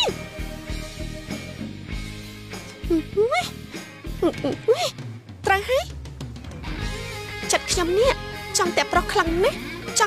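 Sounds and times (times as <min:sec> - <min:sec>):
quiet background music: 0:00.0 - 0:10.0
woman exclaiming: 0:02.9 - 0:03.6, 0:04.2 - 0:04.9.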